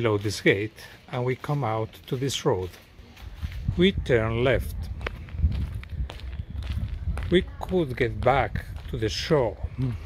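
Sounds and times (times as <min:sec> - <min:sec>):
footsteps on asphalt: 0:00.0 - 0:10.0.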